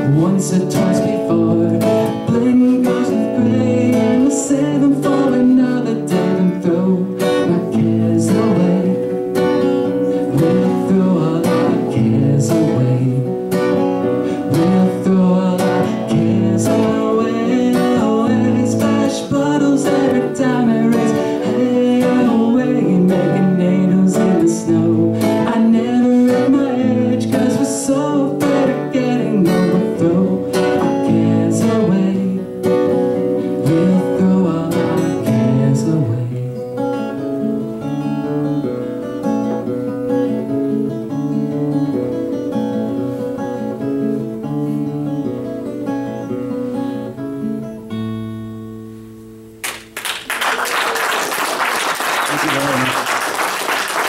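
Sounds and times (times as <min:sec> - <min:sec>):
acoustic guitar strumming: 0:00.0 - 0:50.3.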